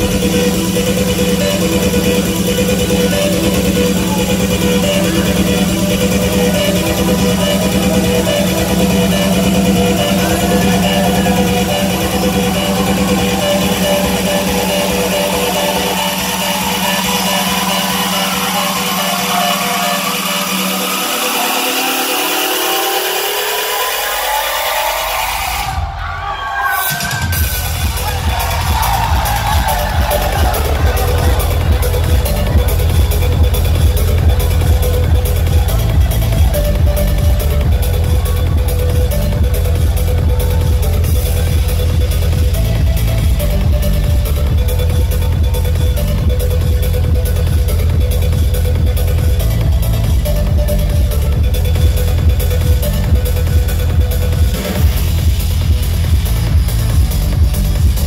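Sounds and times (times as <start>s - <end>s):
rising synth sweep: 0.0s - 25.8s
electronic dance music: 0.0s - 58.0s.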